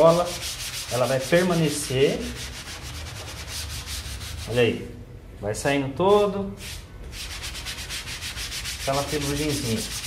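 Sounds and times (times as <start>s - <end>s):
wet sponge scrubbing: 0.0s - 4.6s, 6.6s - 10.0s.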